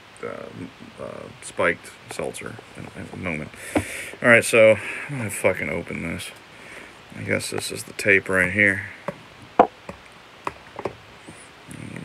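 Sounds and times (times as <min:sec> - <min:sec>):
taps and knocks on cardboard box: 0:03.7 - 0:04.0, 0:09.1 - 0:11.0.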